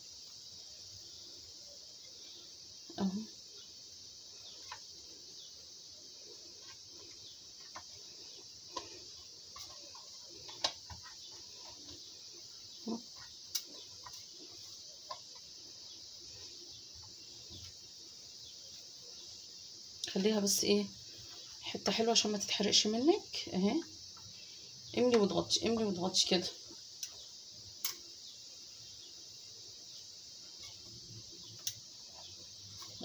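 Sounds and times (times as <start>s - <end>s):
steady high hiss: 0.0s - 33.0s
hands handling dough: 6.2s - 17.9s.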